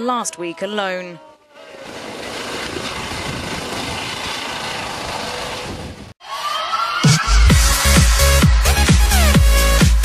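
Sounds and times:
helicopter lifting off: 1.6s - 6.2s.

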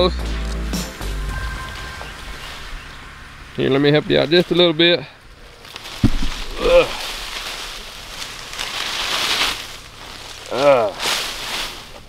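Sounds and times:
leaves rustling and swishing: 0.3s - 12.0s
thump: 6.0s - 6.5s.

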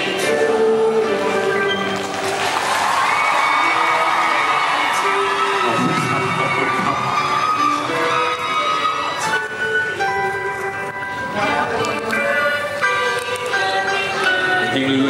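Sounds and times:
background music: 0.0s - 15.0s
crowd screaming and cheering: 1.2s - 9.6s.

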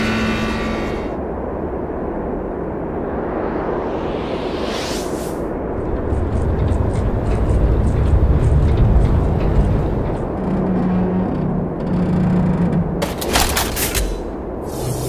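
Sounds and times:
steady low hum: 0.0s - 13.3s
deep armoured vehicle engine rumble: 5.6s - 13.1s.

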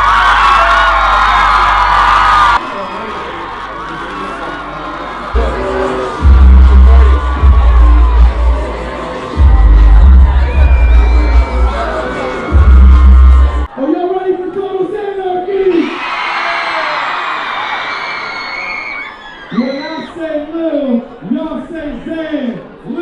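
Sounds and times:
concert crowd screaming and cheering: 0.0s - 23.0s
dance music: 5.3s - 13.8s
muffled deep bass pounding: 5.4s - 8.8s, 9.4s - 11.8s, 12.5s - 13.7s.

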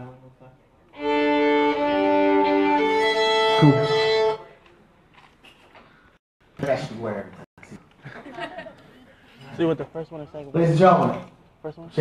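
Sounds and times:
violin playing a held note: 1.5s - 4.5s.

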